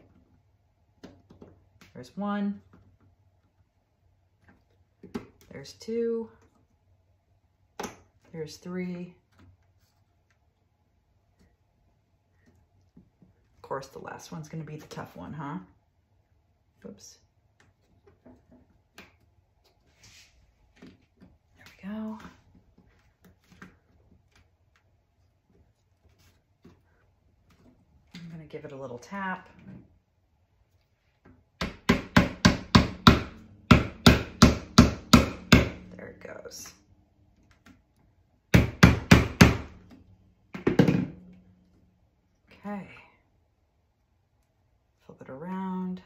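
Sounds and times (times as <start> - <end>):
hammer tapping wood: 31.6 - 35.8.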